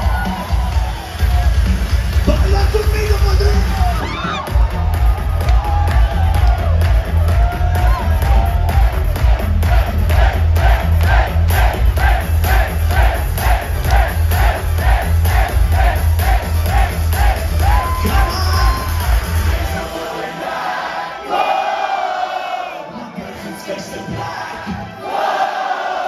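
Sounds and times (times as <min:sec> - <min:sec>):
live pop-rock concert music: 0:00.0 - 0:21.4, 0:22.7 - 0:25.0
crowd chanting shouts: 0:09.2 - 0:23.2, 0:24.0 - 0:26.0.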